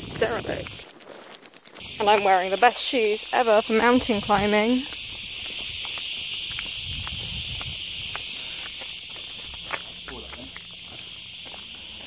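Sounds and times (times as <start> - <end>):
cicadas buzzing: 0.0 - 12.0
flip-flop footsteps on gravel: 0.1 - 2.7, 3.8 - 12.0.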